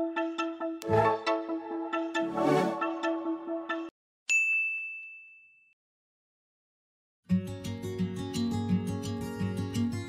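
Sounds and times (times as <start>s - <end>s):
background music: 0.0s - 3.9s
bright bell ding: 4.3s - 5.8s.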